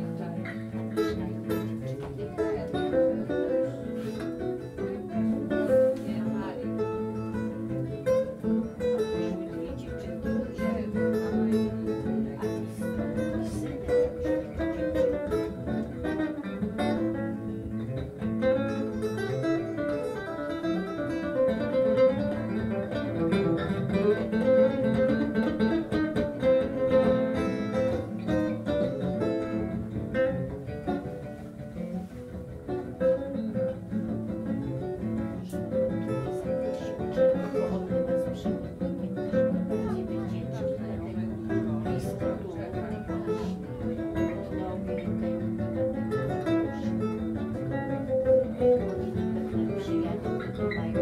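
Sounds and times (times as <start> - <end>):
acoustic guitar strumming: 0.0 - 51.0
plucked string lead: 0.0 - 51.0.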